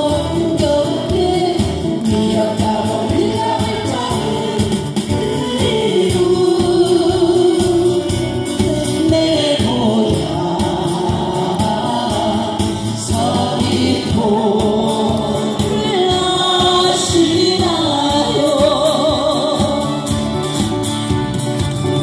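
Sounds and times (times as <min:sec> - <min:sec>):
group singing into microphones: 0:00.0 - 0:20.7
strummed acoustic guitars: 0:00.0 - 0:22.0.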